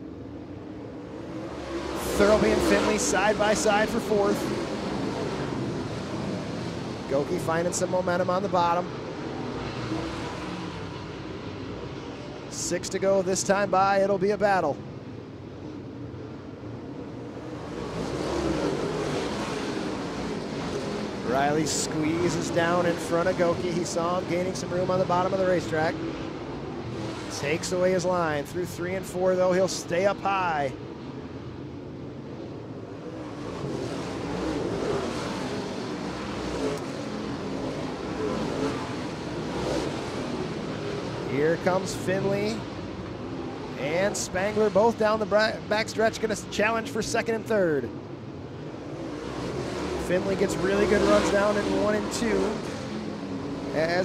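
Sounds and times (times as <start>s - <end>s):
race car engines droning: 0.0s - 54.0s.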